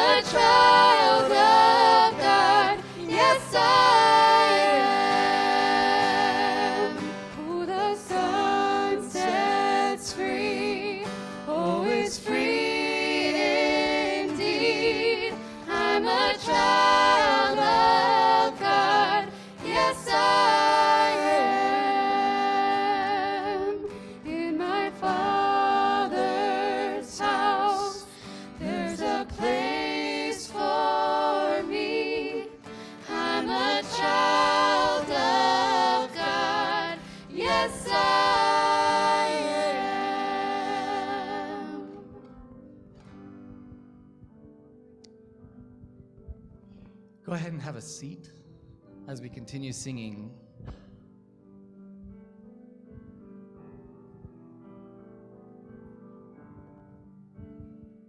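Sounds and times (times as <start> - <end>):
group singing in harmony: 0.0 - 42.4
acoustic guitar: 0.0 - 49.2, 50.4 - 58.0.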